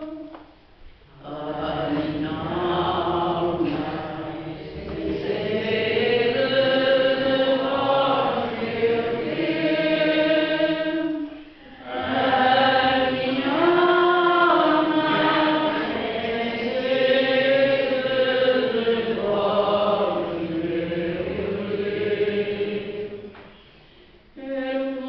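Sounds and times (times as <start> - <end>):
voices singing a chant-like melody: 1.1 - 23.4, 24.4 - 25.0.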